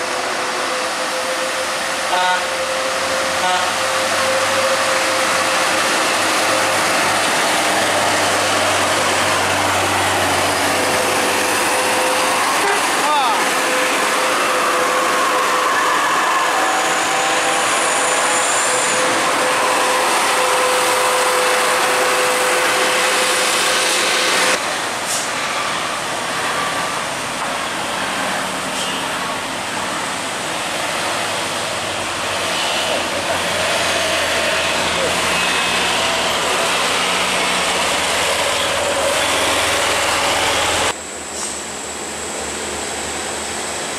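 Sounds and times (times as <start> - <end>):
diesel engines climbing uphill: 0.0 - 43.9
people talking: 12.6 - 13.5.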